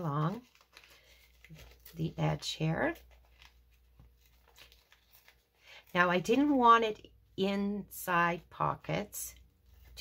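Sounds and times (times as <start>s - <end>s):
paper coffee filter tearing: 2.9s - 6.1s.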